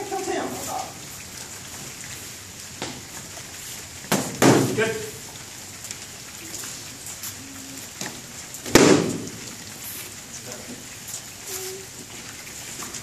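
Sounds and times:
foam sword smack: 8.7 - 9.2.

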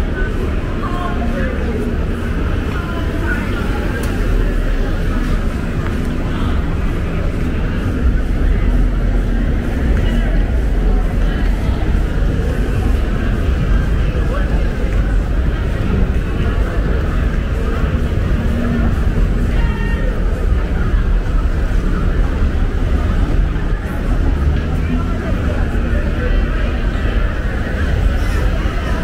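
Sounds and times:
cars driving slowly past: 0.0 - 29.0
indistinct voices: 0.0 - 29.0.

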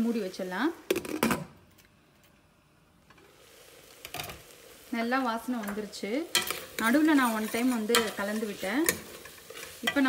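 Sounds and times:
faint food sizzling: 0.0 - 1.4, 2.3 - 10.0.

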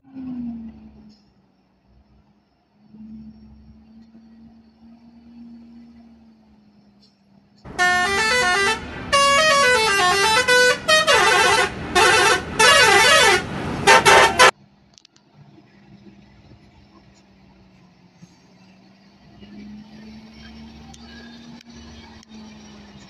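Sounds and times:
truck engine humming low: 0.0 - 23.0
multi-tone musical horn: 7.7 - 14.5.

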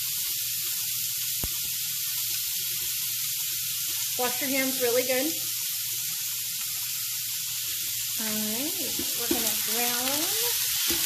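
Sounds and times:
meat sizzling in a skillet: 0.0 - 11.0
spatula stirring meat in pan: 8.8 - 11.0.

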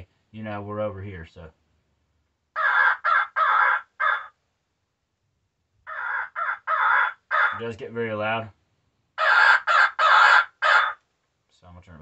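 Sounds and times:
electronic crow call caws: 2.6 - 4.4, 5.9 - 7.6, 9.2 - 11.0.

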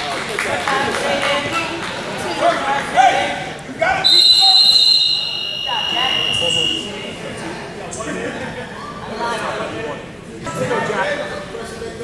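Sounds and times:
voices: 0.0 - 12.0
high-pitched two-tone signal: 4.2 - 6.9.

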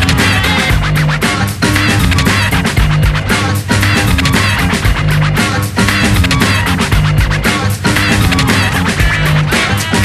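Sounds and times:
hip-hop beat: 0.0 - 10.0.

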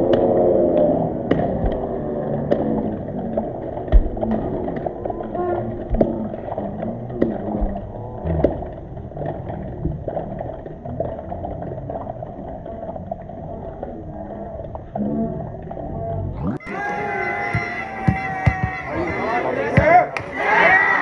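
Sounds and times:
voices calling and shouting: 16.2 - 21.0
sharp knocks: 17.5 - 20.3.

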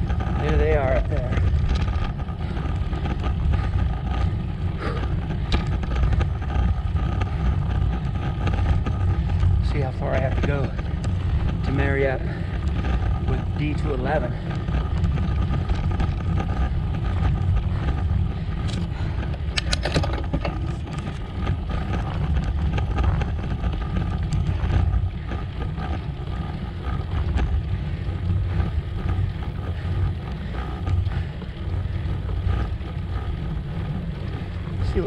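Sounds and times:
tyres on rough asphalt: 0.0 - 35.0
wind buffeting microphone: 0.0 - 35.0.

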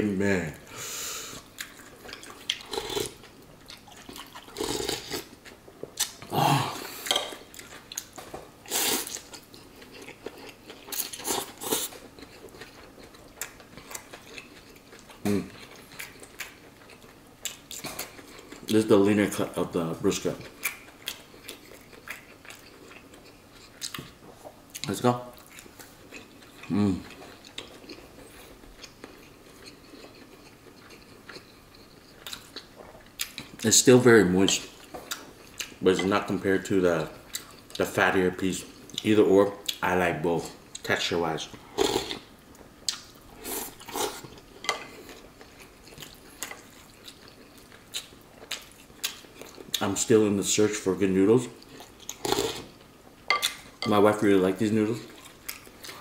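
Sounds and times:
person chewing: 1.3 - 18.7, 20.4 - 33.6, 34.5 - 36.4, 37.0 - 37.8, 41.5 - 49.9, 51.6 - 53.9, 55.0 - 56.0
person slurping noodles: 4.6 - 5.2, 41.7 - 42.2.

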